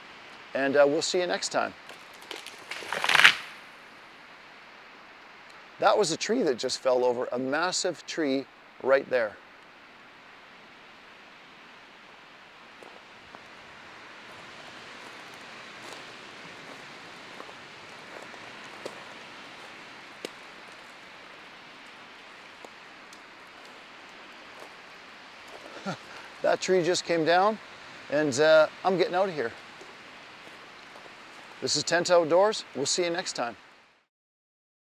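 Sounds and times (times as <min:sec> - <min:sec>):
wind rushing through trees: 0:00.0 - 0:34.1
faint ticks and snaps: 0:01.8 - 0:03.4, 0:20.2 - 0:21.0, 0:21.8 - 0:24.8.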